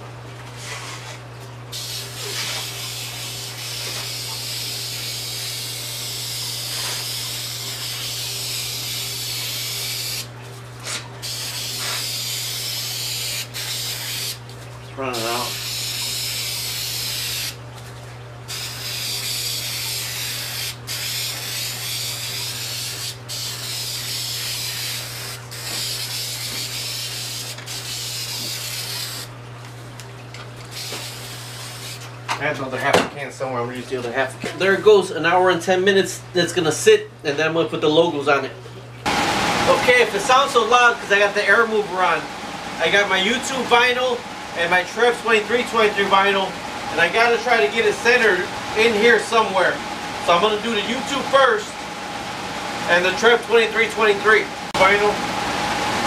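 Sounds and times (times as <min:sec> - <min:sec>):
spray-paint can hissing: 0:01.8 - 0:05.6, 0:11.2 - 0:14.4, 0:18.5 - 0:29.3, 0:30.7 - 0:32.0
air mover humming: 0:39.0 - 0:56.0.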